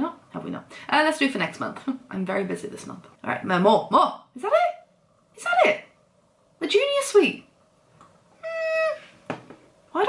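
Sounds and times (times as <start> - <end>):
woman humming mm: 8.4 - 9.2.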